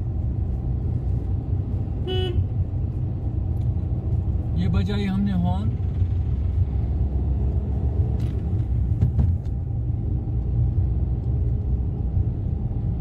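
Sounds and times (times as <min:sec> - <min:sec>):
car engine running in cabin: 0:00.0 - 0:13.0
tyre and road noise: 0:00.0 - 0:13.0.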